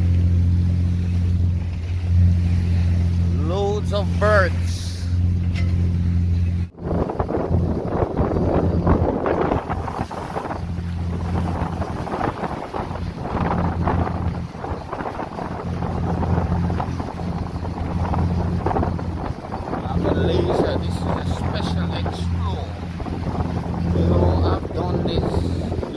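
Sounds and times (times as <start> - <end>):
boat engine humming: 0.0 - 25.9
water rushing along hull: 0.0 - 25.9
wind buffeting microphone: 0.0 - 25.9.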